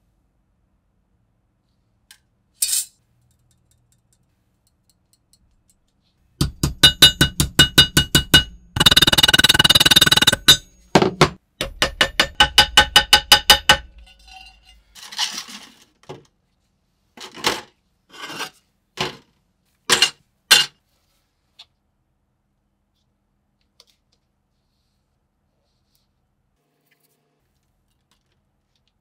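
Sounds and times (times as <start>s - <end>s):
hammer tapping metal: 6.4s - 14.6s.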